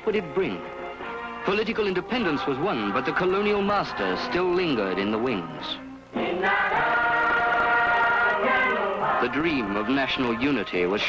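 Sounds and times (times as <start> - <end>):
choir singing: 2.0 - 5.4, 6.1 - 11.0.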